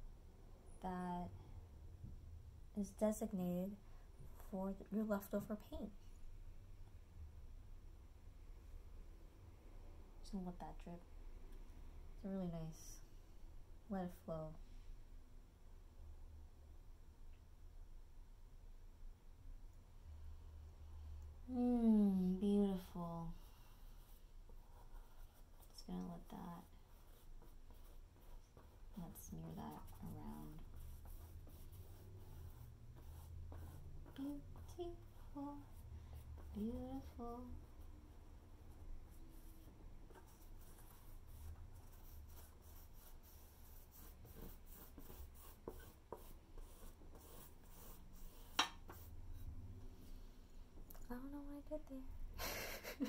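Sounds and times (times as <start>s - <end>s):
low room hum: 0.0s - 53.0s
paintbrush scratching on canvas: 23.8s - 37.5s, 38.6s - 49.6s.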